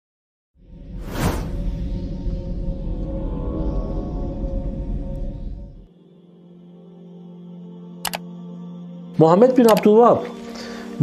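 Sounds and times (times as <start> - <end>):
whoosh: 0.6 - 5.9
low music drone: 0.6 - 11.0.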